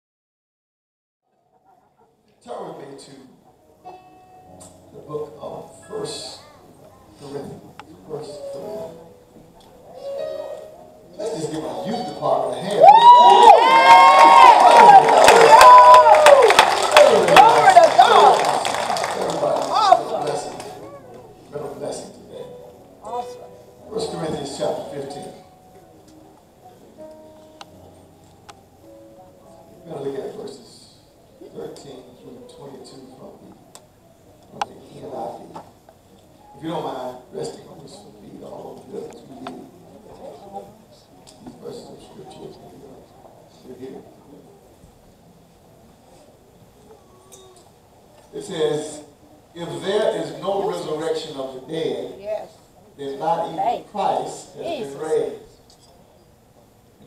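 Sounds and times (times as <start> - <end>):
murmur of voices: 1.3 - 57.0
congregation calling out: 9.9 - 22.4.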